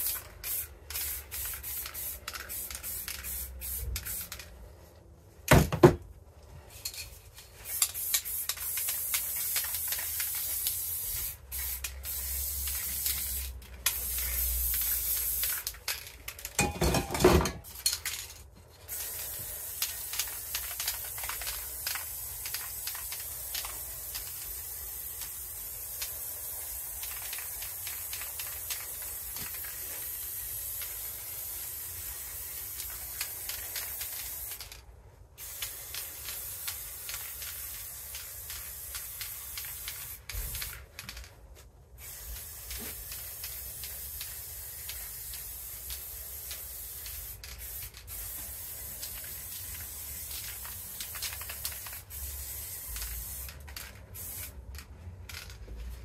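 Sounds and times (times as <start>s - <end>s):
spray paint can hissing: 0.0s - 4.7s, 6.9s - 16.6s, 17.6s - 34.8s, 35.4s - 41.3s, 41.9s - 55.6s.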